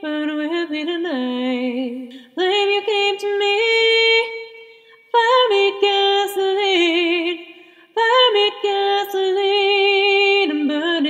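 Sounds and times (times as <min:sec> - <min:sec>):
female a cappella vocal harmony: 0:00.0 - 0:11.0.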